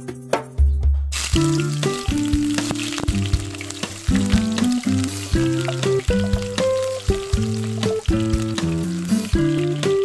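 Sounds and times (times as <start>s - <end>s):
background music: 0.0s - 10.0s
onions sizzling in hot oil: 1.1s - 10.0s.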